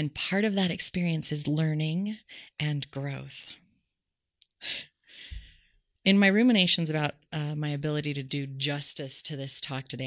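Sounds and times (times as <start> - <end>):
woman breathing: 4.6 - 5.9.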